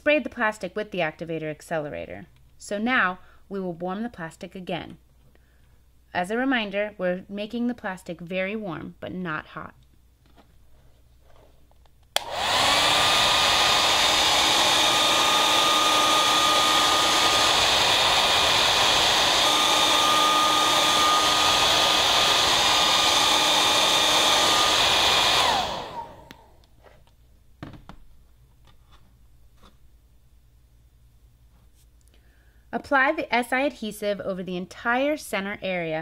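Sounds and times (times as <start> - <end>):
hair dryer switch click: 12.2 - 13.1
hair dryer running: 12.2 - 26.7.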